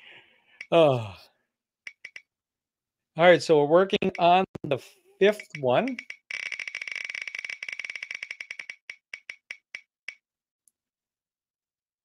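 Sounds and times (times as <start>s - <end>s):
spinner wheel ticking: 1.9s - 2.2s, 5.2s - 10.2s.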